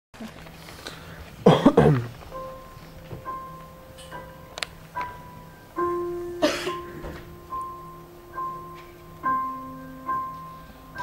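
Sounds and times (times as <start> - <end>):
faint steady hum: 0.2 - 11.0
person coughing: 1.4 - 2.1, 6.4 - 6.9.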